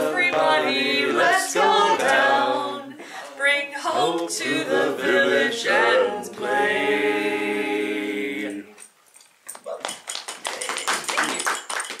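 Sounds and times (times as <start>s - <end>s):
small group applauding: 9.8s - 12.0s.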